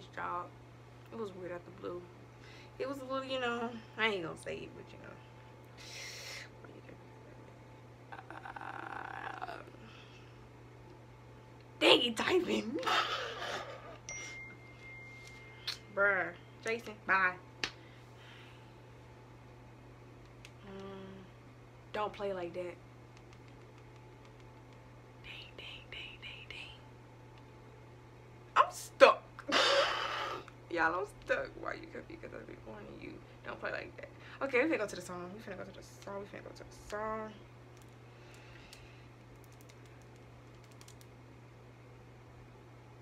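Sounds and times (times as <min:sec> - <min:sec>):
low electrical hum: 0:00.0 - 0:43.0
woman whispering softly: 0:25.2 - 0:26.8.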